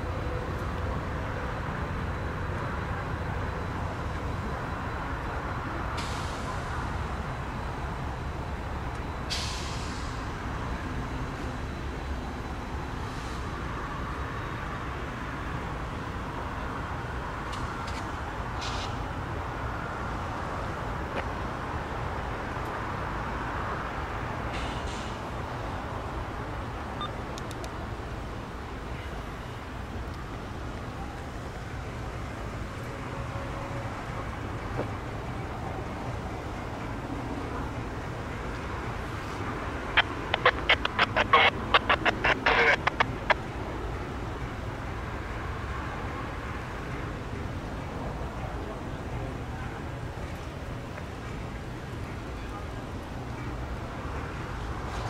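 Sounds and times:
diesel trains idling: 0.0s - 22.2s, 23.0s - 55.0s.

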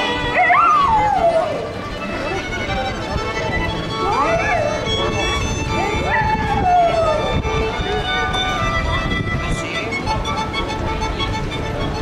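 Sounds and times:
violin sliding notes: 0.0s - 12.0s.

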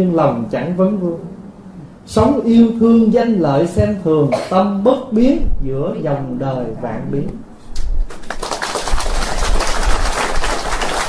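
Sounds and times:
audience clapping: 8.1s - 11.0s.

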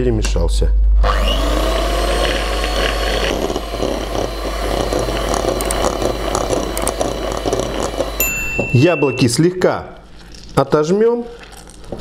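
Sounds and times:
electric hand mixer running: 1.0s - 8.6s.

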